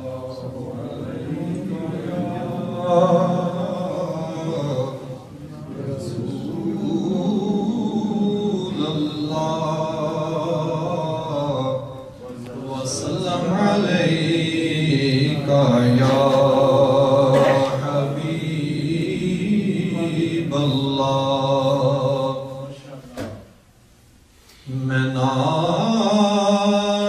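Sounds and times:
man chanting devotional poem: 0.0s - 23.1s, 24.6s - 27.0s.

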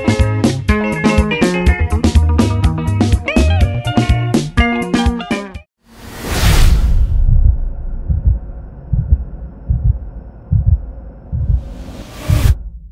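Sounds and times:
whoosh: 5.8s - 9.7s, 11.3s - 12.9s
deep bass thumps: 6.6s - 12.9s
low droning hum: 6.9s - 12.9s.

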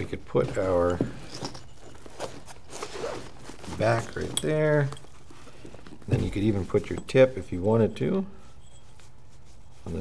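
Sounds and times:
nylon rustling: 0.0s - 10.0s.

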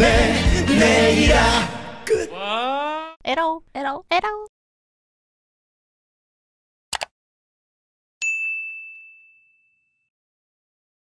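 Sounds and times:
notification bell ding: 8.2s - 10.1s.

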